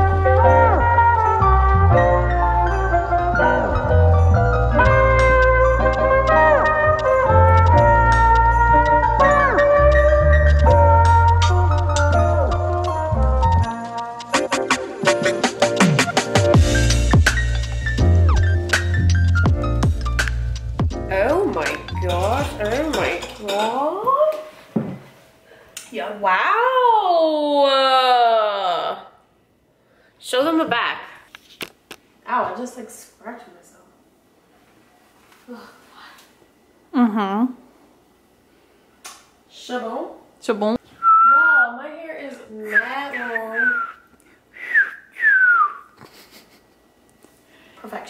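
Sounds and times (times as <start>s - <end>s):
background music with bass line: 0.0s - 22.9s
person whistling falling notes: 41.0s - 41.7s, 42.7s - 46.0s.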